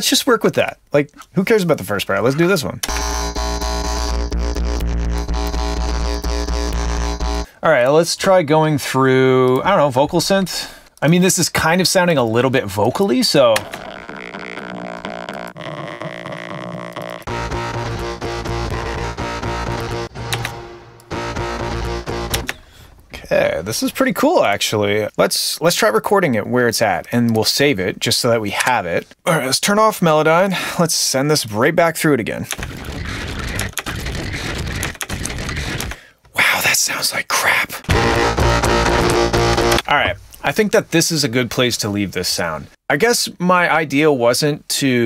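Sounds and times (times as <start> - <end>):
distorted vocal-like electronic bass: 2.9 - 7.5, 13.6 - 20.4, 21.1 - 22.5, 37.9 - 39.8.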